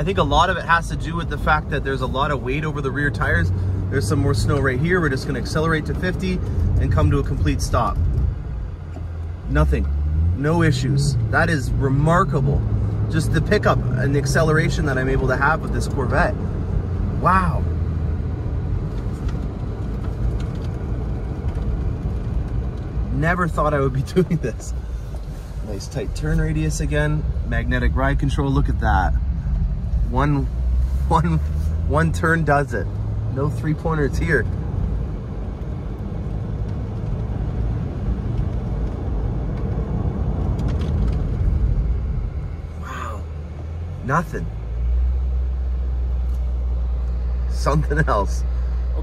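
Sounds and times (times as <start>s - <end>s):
car engine low drone: 0.0s - 49.0s
tyre and road noise: 0.0s - 49.0s.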